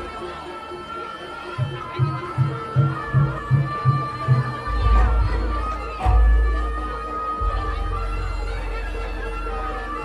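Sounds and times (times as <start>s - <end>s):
high wind instrument line: 0.0s - 10.0s
low drum beat: 2.3s - 9.1s.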